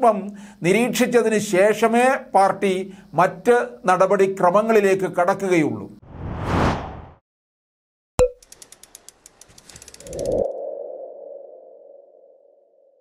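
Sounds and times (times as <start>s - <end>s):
whoosh: 6.0s - 7.2s
quick run of ticks: 8.4s - 10.5s.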